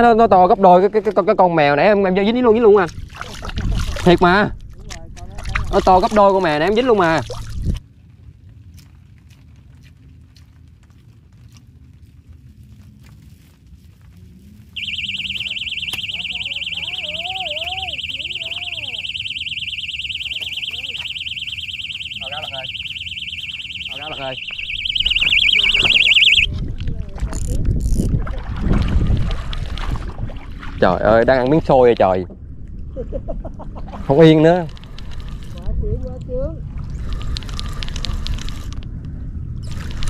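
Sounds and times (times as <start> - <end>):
fishing bite alarm beeping: 14.8 - 26.5.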